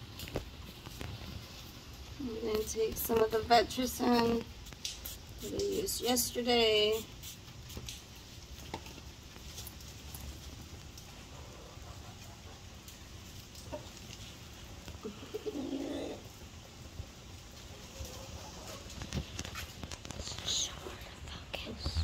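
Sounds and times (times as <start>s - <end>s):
hen murmuring: 15.0s - 16.3s.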